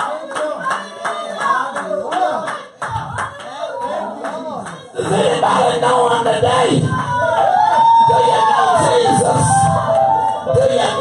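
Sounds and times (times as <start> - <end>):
rhythmic hand-clapping: 0.0 - 9.1
voices singing: 0.0 - 11.0.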